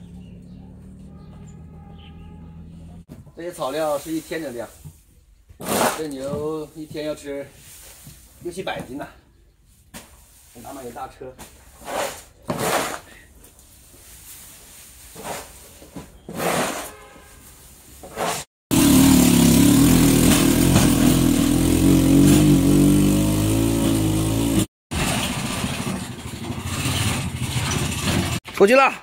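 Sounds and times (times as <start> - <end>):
motor tricycle engine running: 0.0 - 3.1, 18.7 - 28.4
shovels scraping concrete floor: 5.6 - 6.5, 10.0 - 18.5.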